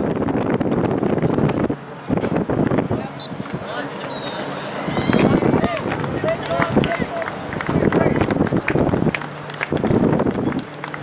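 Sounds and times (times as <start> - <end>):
voices talking and calling out: 1.2 - 11.0.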